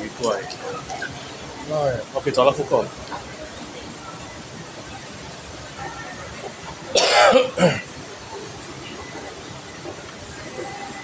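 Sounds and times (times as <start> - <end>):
person coughing: 7.0 - 7.9.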